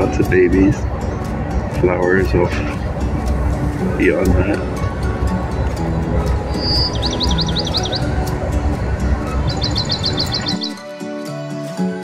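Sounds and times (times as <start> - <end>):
soft background music: 0.0 - 12.0
bird chirps: 6.4 - 8.4, 9.1 - 10.8.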